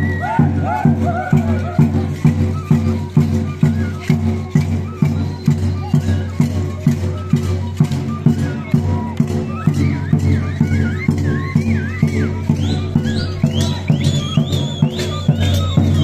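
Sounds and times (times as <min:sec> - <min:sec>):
high wavering melody: 0:00.0 - 0:16.0.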